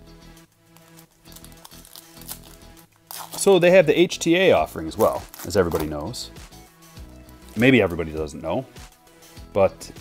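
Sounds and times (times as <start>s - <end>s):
quiet background music: 0.0s - 10.0s
cards and foil pack rustling: 0.6s - 3.8s, 4.8s - 6.2s, 7.4s - 8.2s.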